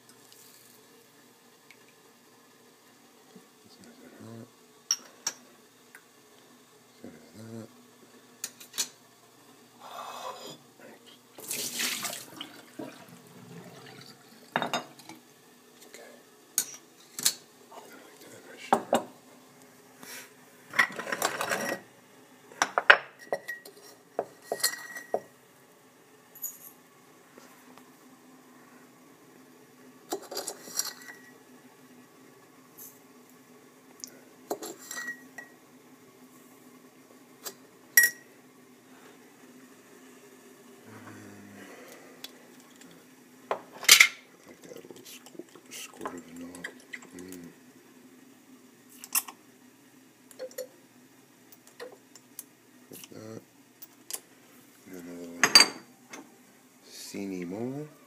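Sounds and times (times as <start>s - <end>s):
liquid pouring: 11.4s - 14.6s, 44.4s - 47.4s.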